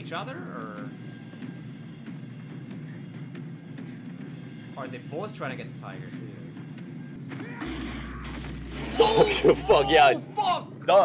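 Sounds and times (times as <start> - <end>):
film music: 0.0 - 11.0.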